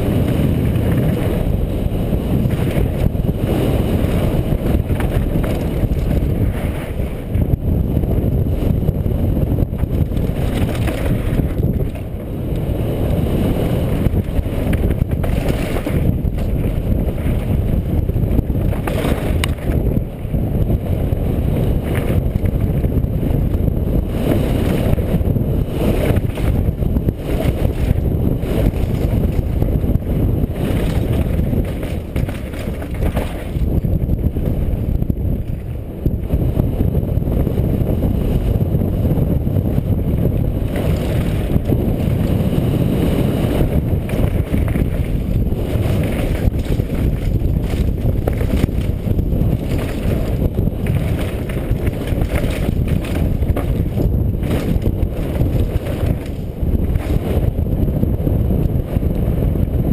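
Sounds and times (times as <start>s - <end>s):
mountain bike rattling over trail: 0.0s - 59.9s
wind buffeting microphone: 0.0s - 59.9s.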